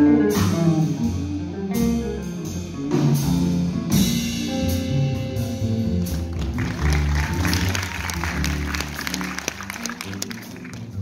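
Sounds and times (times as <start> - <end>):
jazz electric guitar: 0.0 - 11.0
upright bass: 0.0 - 11.0
audience applause: 6.0 - 11.0.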